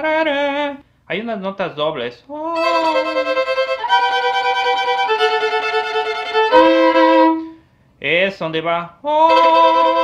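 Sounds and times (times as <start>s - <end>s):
violin double stops: 2.6s - 7.6s.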